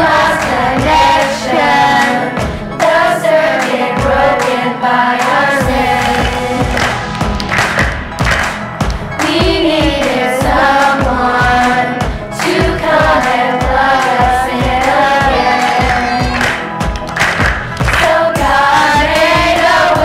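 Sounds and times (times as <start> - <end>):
steady beat: 0.0 - 4.6, 5.2 - 20.0
children's choir singing: 0.0 - 20.0
musical accompaniment: 0.0 - 20.0
people clapping along: 0.0 - 20.0.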